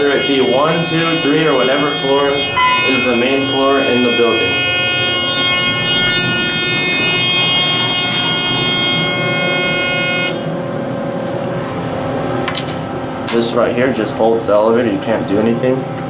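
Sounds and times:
harsh elevator buzzer: 0.0 - 11.1.

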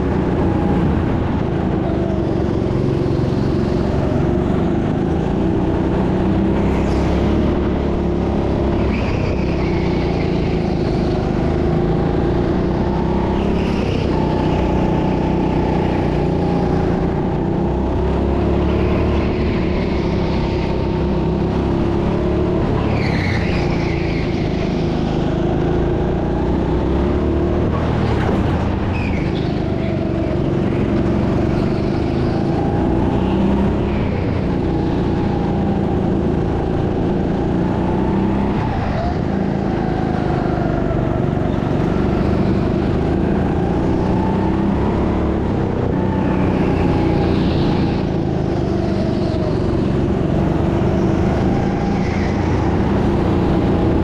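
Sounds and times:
go-kart engine running: 0.0 - 54.0
tyre squeals: 22.8 - 25.0, 28.9 - 30.4.

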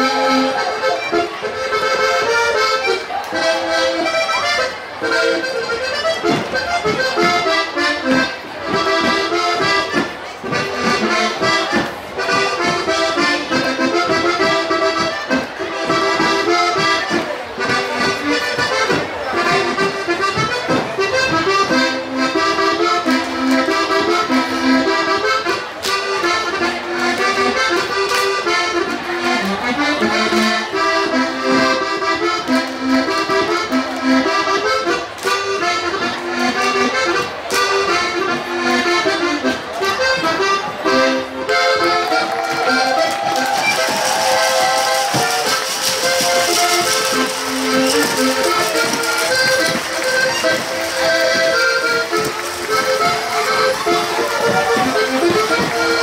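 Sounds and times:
accordion folk dance music: 0.0 - 56.0
dancers slapping and stomping: 42.4 - 56.0.

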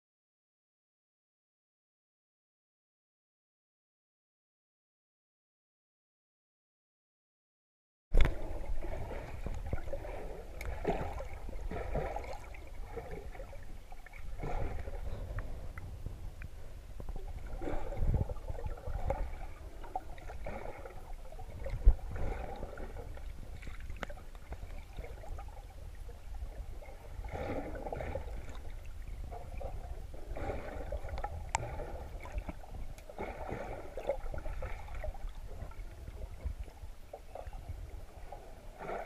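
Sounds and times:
muffled underwater water swishing: 8.1 - 39.0
steady low rumble: 8.2 - 38.8.

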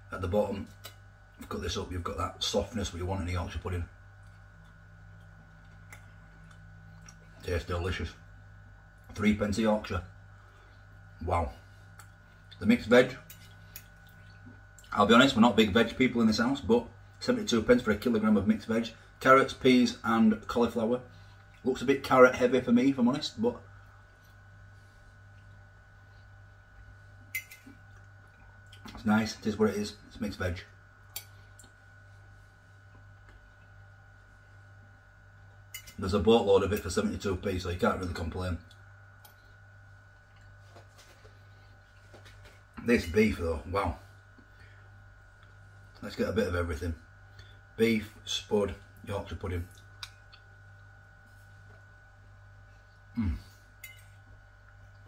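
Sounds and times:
faint steady hum: 0.0 - 55.0
person chewing food: 4.2 - 7.4, 38.7 - 42.8, 49.7 - 51.0
fork clinking on a plate: 27.3 - 27.7, 53.8 - 54.2.

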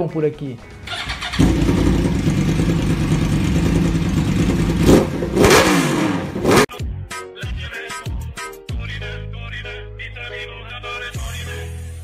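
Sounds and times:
motorcycle engine revving: 0.9 - 6.7.

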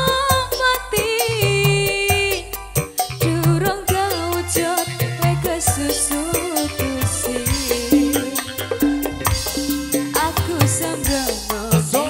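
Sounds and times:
woman singing: 0.0 - 8.8, 9.9 - 12.0
hand drums: 0.0 - 12.0
keyboard: 0.0 - 12.0
electric guitar: 2.1 - 12.0.

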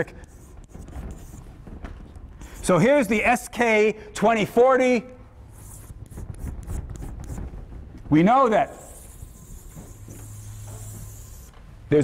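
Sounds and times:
chalk scraping on blackboard: 0.0 - 1.6, 2.4 - 3.1, 5.5 - 7.5, 8.6 - 11.6.

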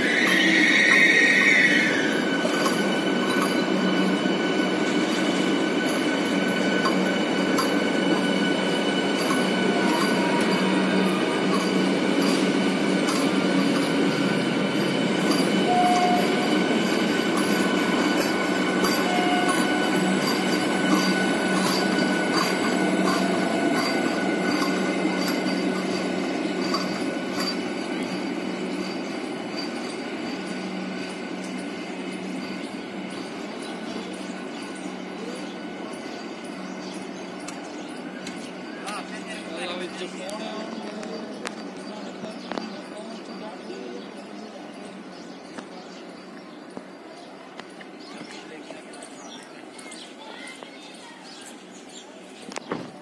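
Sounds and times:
high-pitched train tones: 0.0 - 52.4
train clicks: 0.0 - 53.0
train wheels rumbling on rail: 0.0 - 53.0.

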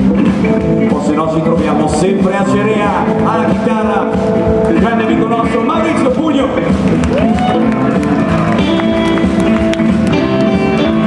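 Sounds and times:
electric blues band playing: 0.0 - 11.0
man speaking: 0.9 - 6.8.

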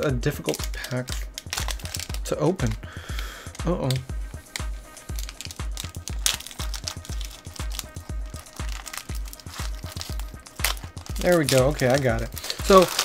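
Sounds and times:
background music with low beat: 0.0 - 13.0
foil wrapper crinkling and tearing: 0.4 - 13.0.

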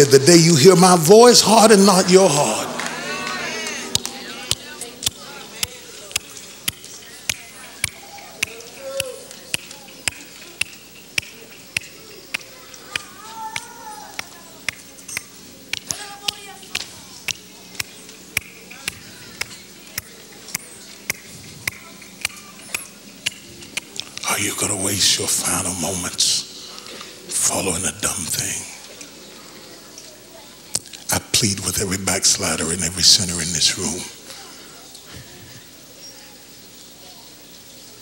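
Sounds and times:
faint voices: 0.0 - 38.0
faint background murmur: 2.0 - 38.0.

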